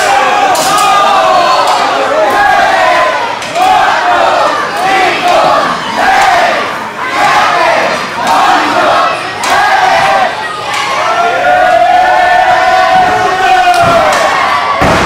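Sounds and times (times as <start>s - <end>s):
crowd shouting together: 0.0s - 15.0s.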